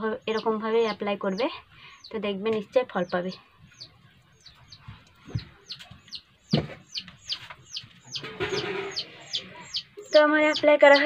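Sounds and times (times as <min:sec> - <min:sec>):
bird chirping: 0:00.0 - 0:11.0
dull thumps: 0:04.8 - 0:05.9, 0:06.5 - 0:07.1.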